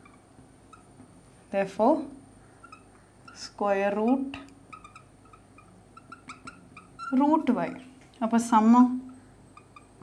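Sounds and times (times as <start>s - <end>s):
marker squeaking on glass board: 0.0s - 1.0s, 2.6s - 7.8s, 9.1s - 10.0s.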